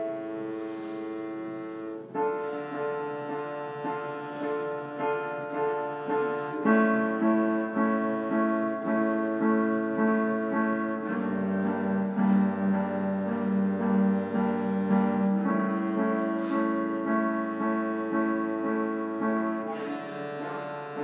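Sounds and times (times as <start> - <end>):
cello notes: 0.0 - 21.0
piano playing: 0.0 - 21.0.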